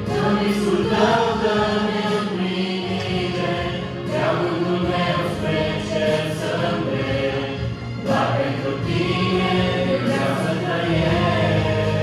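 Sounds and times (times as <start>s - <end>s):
group singing worship song: 0.0s - 12.0s.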